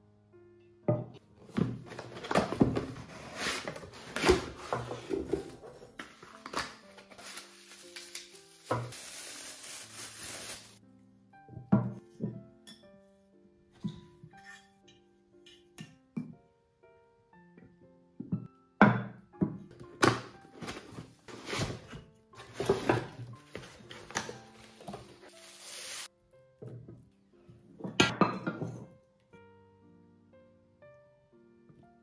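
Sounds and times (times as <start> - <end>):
soft piano music: 0.0 - 32.0
packaging rustling and crinkling: 1.8 - 10.8
plastic film pulled hissing: 6.4 - 10.8, 24.5 - 26.1.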